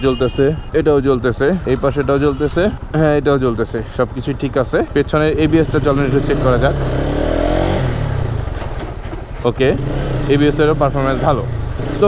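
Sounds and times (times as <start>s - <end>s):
motorcycle engine pulling away: 5.0s - 12.0s.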